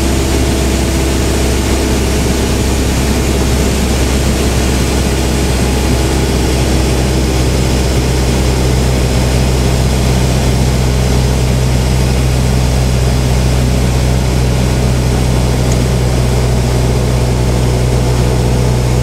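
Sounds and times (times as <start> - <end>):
propeller aircraft engine drone: 0.0 - 19.0.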